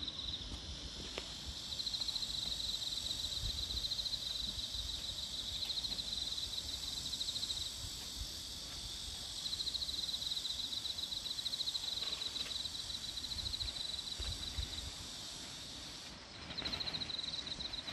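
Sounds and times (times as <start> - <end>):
faint hum of insects: 0.0 - 17.9.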